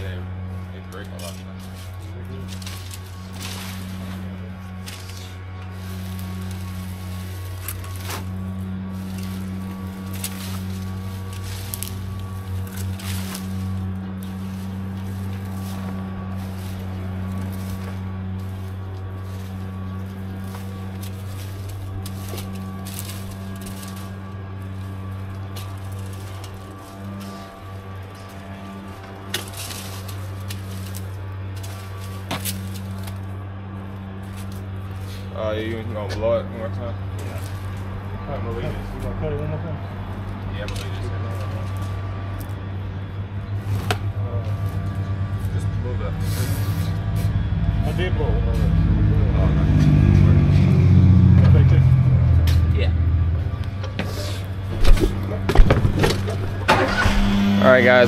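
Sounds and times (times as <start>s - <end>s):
rake scraping: 0.0s - 39.2s, 39.8s - 47.6s, 53.4s - 58.0s
low mechanical drone: 0.0s - 58.0s
debris into plastic trash can: 54.7s - 57.1s.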